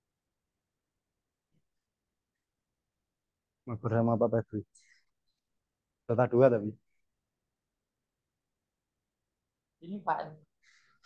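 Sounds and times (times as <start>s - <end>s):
man speaking: 3.7s - 4.6s, 6.1s - 6.8s.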